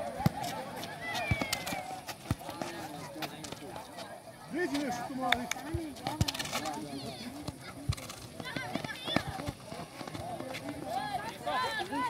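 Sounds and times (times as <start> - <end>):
players calling and shouting: 0.0 - 12.0
ball kicked on concrete: 0.1 - 3.6.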